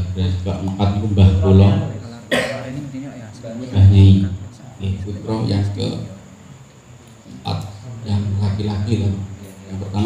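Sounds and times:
man talking: 0.0 - 6.4, 7.3 - 10.0.

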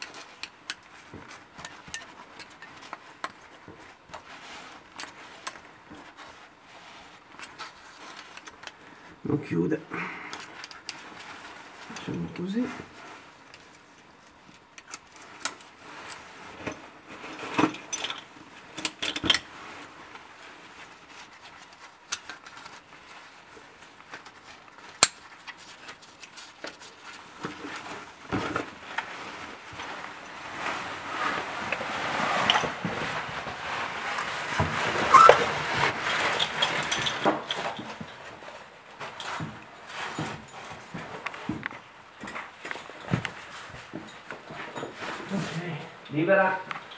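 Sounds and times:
gear rustling and scraping on rock: 0.0 - 9.0, 10.3 - 46.9.

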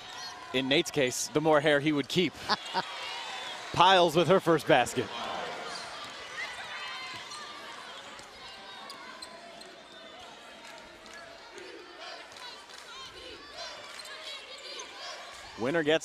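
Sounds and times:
murmur of voices: 0.0 - 16.0
sneakers squeaking: 5.6 - 10.4.

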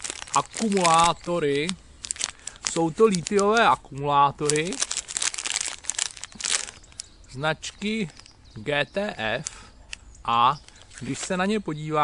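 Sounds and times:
plastic bag crinkling: 0.0 - 8.4, 9.2 - 11.4.

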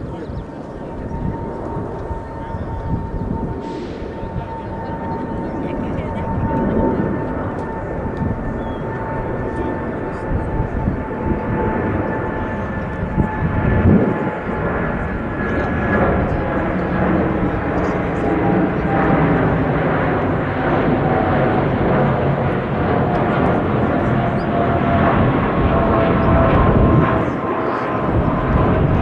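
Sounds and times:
aircraft engines droning with whine: 0.0 - 29.0.

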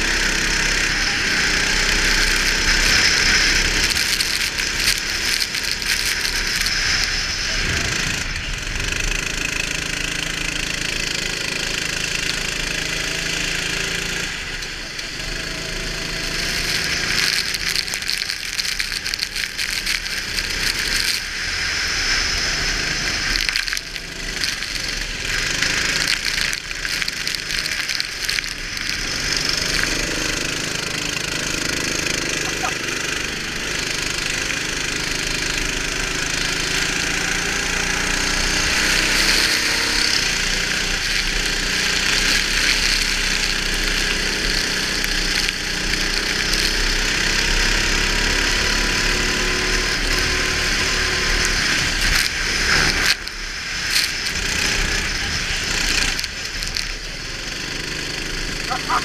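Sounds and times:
rattling and crackling: 0.0 - 8.4, 10.3 - 59.0
go-kart engine revving: 0.0 - 59.0.

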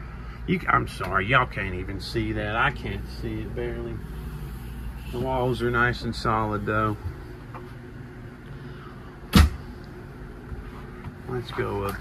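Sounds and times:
steady low hum: 0.0 - 12.0
thump against wooden panelling: 9.3 - 9.6.

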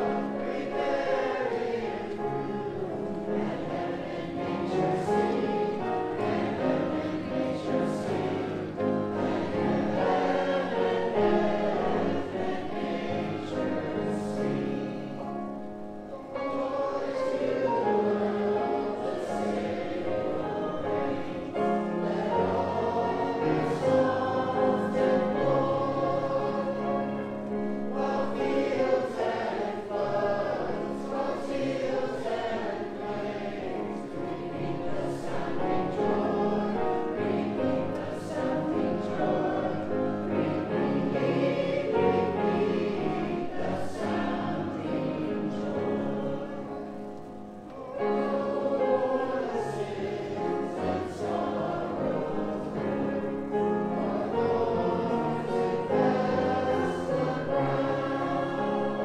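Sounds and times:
congregation singing a hymn: 0.0 - 59.0.

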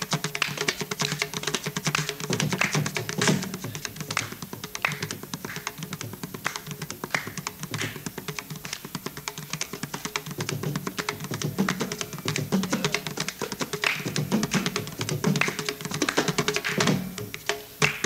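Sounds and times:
mridangam rapid strokes: 0.0 - 18.0.

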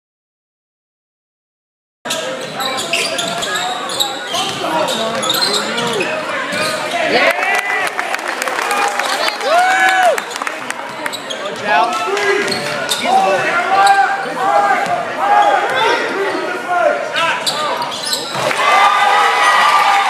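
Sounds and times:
sneakers squeaking on hardwood: 2.1 - 7.1, 10.9 - 11.7, 12.4 - 14.1, 17.4 - 18.5.

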